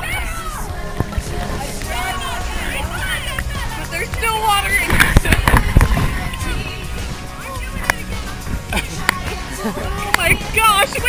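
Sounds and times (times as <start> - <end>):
excited voices: 0.0 - 11.0
water splashing: 0.0 - 11.0.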